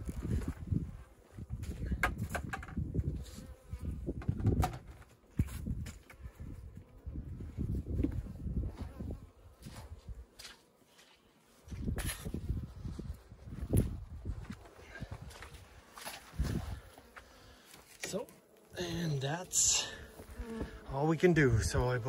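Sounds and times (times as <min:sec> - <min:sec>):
honeybees buzzing: 0:05.2 - 0:22.0.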